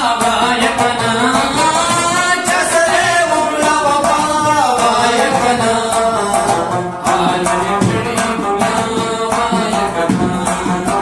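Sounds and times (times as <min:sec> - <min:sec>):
man singing a folk song: 0:00.0 - 0:11.0
plucked rabab strings: 0:00.0 - 0:11.0.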